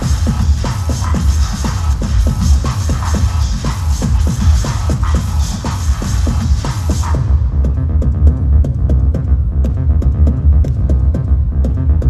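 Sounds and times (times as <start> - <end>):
electronic drum beat: 0.0 - 12.0
throbbing bass line: 0.0 - 12.0.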